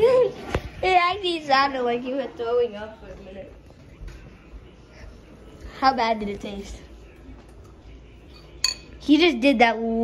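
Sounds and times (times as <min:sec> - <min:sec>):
spoon clinking against ceramic bowl: 0:08.3 - 0:09.0.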